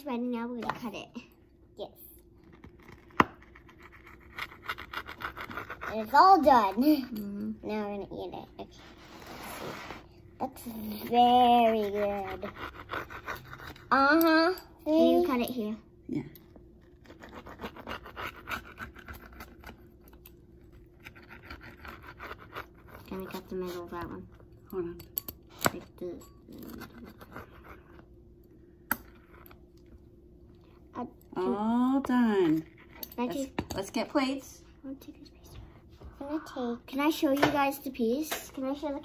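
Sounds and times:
faint steady hum: 0:00.0 - 0:39.0
pizza cutter crackling through crust: 0:16.9 - 0:24.3.

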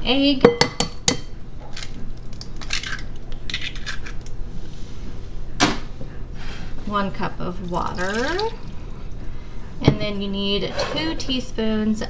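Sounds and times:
egg cracking over glass bowl: 0:01.7 - 0:04.3.

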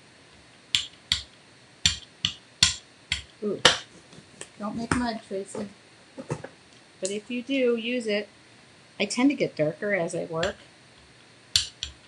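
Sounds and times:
sharp taps and clicks: 0:00.7 - 0:07.2, 0:11.6 - 0:12.0.

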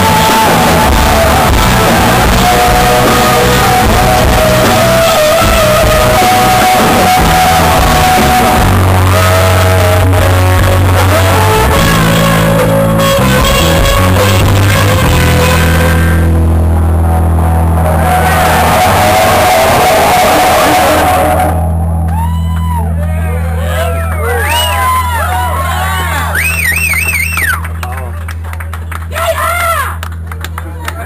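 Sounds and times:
hard rock band playing: 0:00.0 - 0:23.0
shouted vocals: 0:17.9 - 0:27.6, 0:29.1 - 0:30.0.

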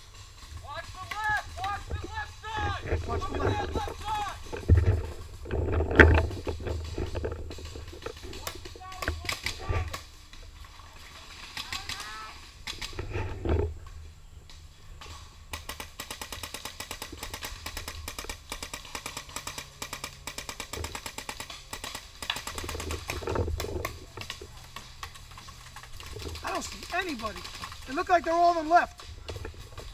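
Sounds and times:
paintball markers firing: 0:15.5 - 0:29.9.

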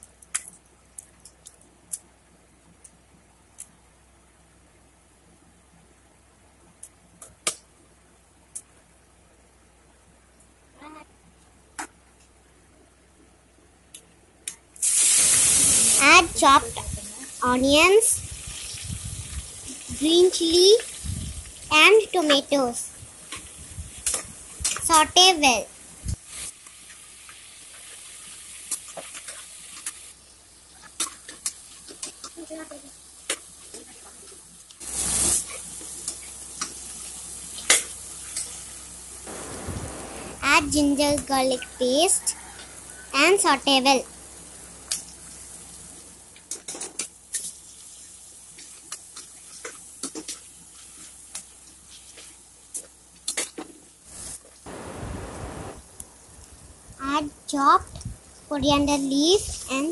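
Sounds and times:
vegetables sizzling in oil: 0:14.8 - 0:52.0, 0:54.0 - 0:56.6.

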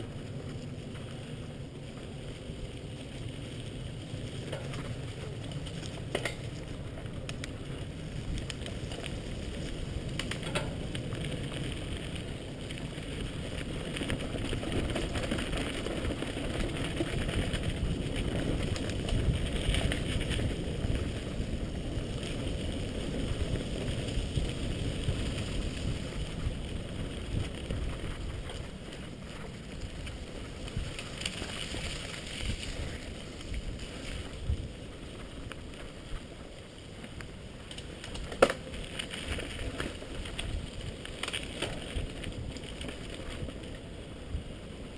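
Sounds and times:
bike rattling over bumps: 0:00.0 - 0:44.9
bike tyres rumbling over gravel: 0:00.0 - 0:44.9.

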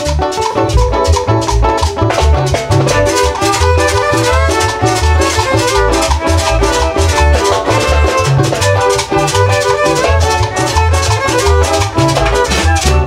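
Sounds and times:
bouncing bass line: 0:00.0 - 0:13.0
percussion with shaker: 0:00.0 - 0:13.0
violins playing melody: 0:00.0 - 0:13.0.

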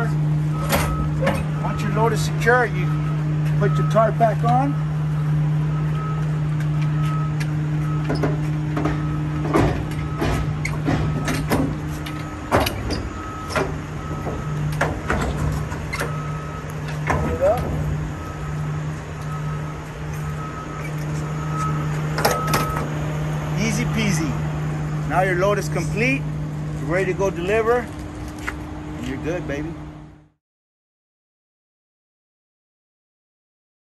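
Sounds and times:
diesel tractor idling: 0:00.0 - 0:30.3
metal clanks and rattles: 0:07.9 - 0:18.0.

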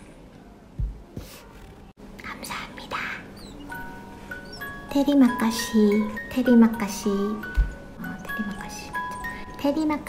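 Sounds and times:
woman whispering: 0:02.2 - 0:03.5, 0:08.0 - 0:10.0.

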